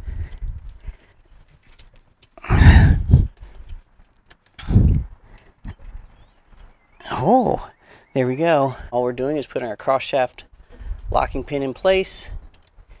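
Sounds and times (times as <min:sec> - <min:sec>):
man huffing with effort: 0:02.4 - 0:03.4
faint metal clicks: 0:12.4 - 0:13.0.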